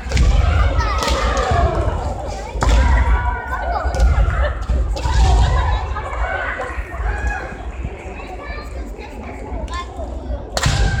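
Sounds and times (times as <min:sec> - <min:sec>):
noisy background sound: 0:00.0 - 0:11.0.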